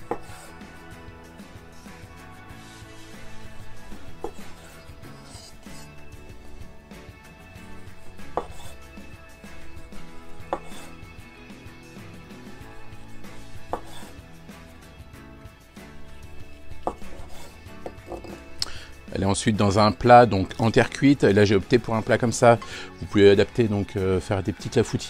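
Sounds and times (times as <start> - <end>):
knife slicing fruit: 0.0 - 0.7, 3.8 - 6.1, 7.7 - 11.1, 12.7 - 14.2, 16.8 - 18.7
knife knocking on wooden board: 0.1 - 0.5, 4.2 - 4.7, 8.2 - 8.8, 10.4 - 10.9, 13.6 - 14.1, 16.8 - 18.4.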